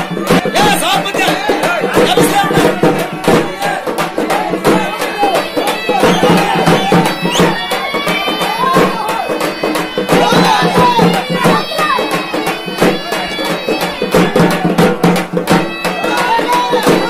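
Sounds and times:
crowd shouting: 0.0 - 17.0
fast frame drum beating: 0.0 - 17.0.

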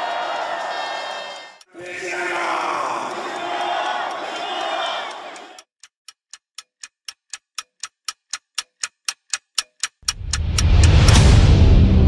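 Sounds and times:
crowd shouting: 0.0 - 5.6
clock-like ticking: 1.5 - 11.4
dramatic music: 10.1 - 12.0.

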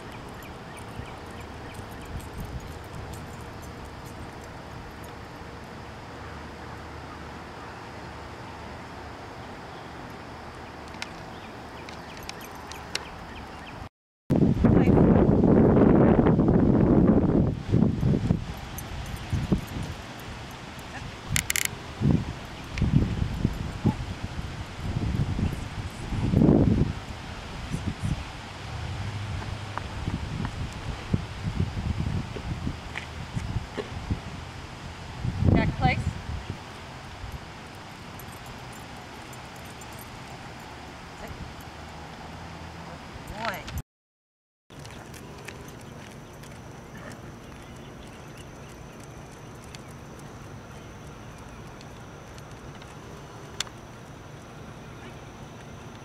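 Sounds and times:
wind gusting over microphone: 0.0 - 6.0, 14.3 - 43.8
outdoor background noise: 0.0 - 43.8, 44.7 - 56.0
footsteps on asphalt: 44.7 - 54.0.

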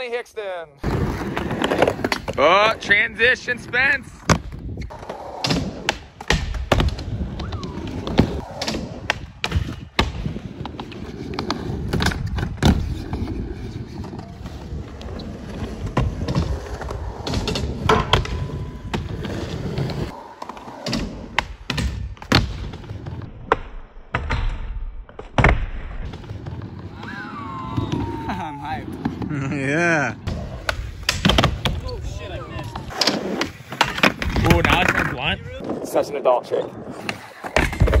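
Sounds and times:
skateboard wheels rolling: 0.8 - 23.3, 25.9 - 38.0
skateboard clacks and thuds: 15.6 - 26.6, 37.0 - 38.0.

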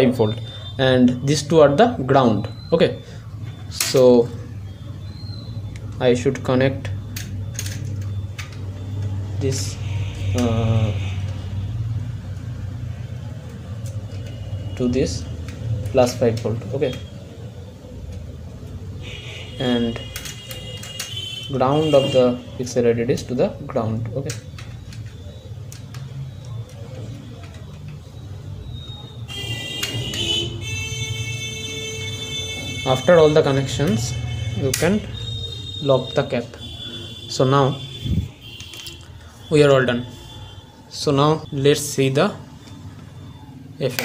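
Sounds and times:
high-pitched electronic tones: 2.2 - 10.4, 24.4 - 41.6.

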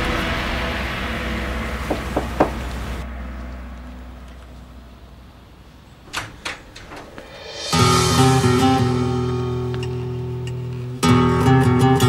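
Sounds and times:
music: 0.0 - 5.1, 7.0 - 12.0
door handle and latch clicking: 6.1 - 7.1.

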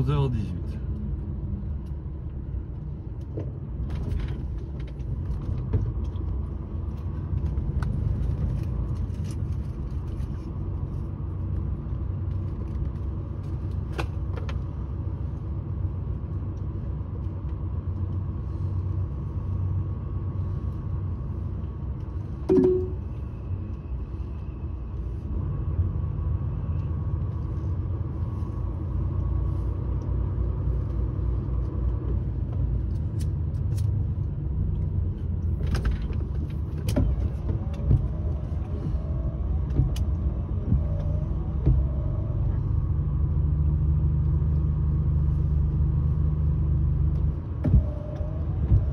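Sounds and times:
vehicle engine and road noise: 0.0 - 48.9
brief loud tone: 22.5 - 23.0.

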